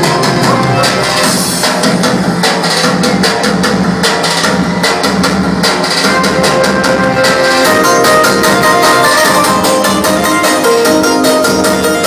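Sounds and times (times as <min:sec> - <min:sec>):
electronic keyboard dance music: 0:00.0 - 0:12.0
fast drum beat: 0:00.0 - 0:12.0.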